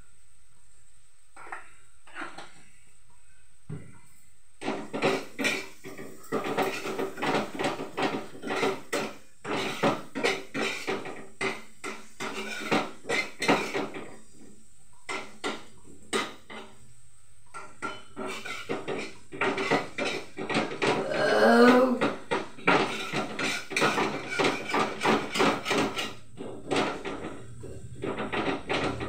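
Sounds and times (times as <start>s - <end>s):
metal spatula scraping a wok: 1.4s - 2.6s, 4.6s - 16.8s, 17.5s - 21.0s, 22.3s - 29.0s.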